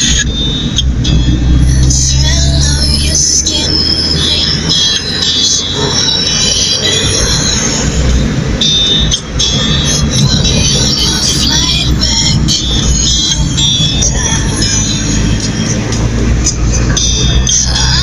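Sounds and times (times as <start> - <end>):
car engine and road rumble: 0.0 - 18.0
high-pitched squealing tones: 0.0 - 18.0.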